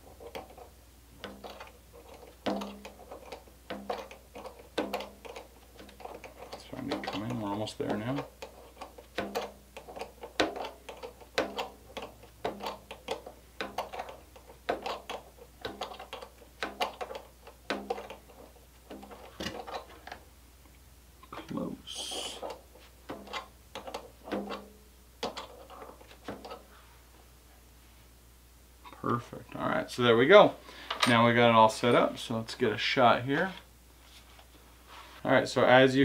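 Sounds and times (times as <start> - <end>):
creaking clicks of threaded rod: 0.3 - 20.2.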